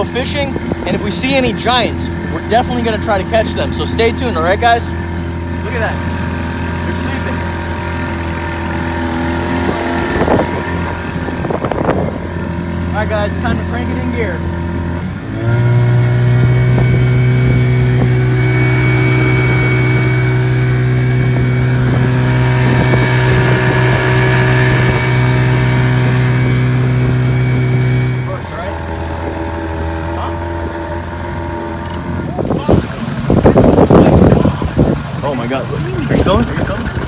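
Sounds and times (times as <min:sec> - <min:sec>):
voices: 0:00.0 - 0:08.5, 0:10.2 - 0:14.6, 0:30.0 - 0:37.0
outboard motor running: 0:00.0 - 0:37.0.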